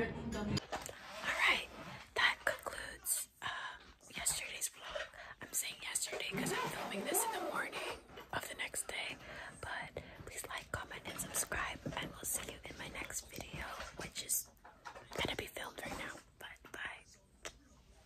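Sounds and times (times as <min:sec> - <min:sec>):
woman whispering: 0:01.0 - 0:17.4.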